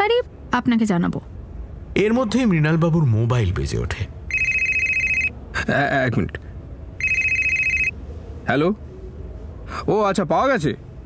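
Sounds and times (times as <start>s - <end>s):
telephone electronic trilling ring: 4.3s - 5.3s, 7.0s - 7.9s.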